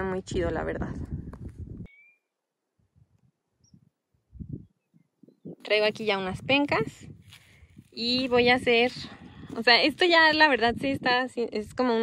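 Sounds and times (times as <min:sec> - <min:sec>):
high chirp: 0:01.9 - 0:02.4.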